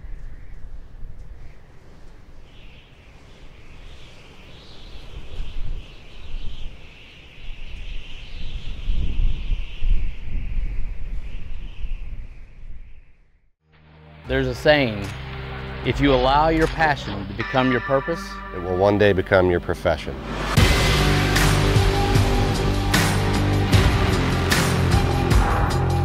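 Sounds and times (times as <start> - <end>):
high wavering chorus: 15.5 - 26.0.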